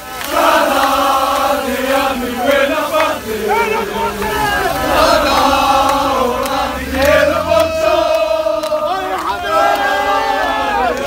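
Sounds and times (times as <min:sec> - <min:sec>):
crowd chanting in unison: 0:00.0 - 0:11.0.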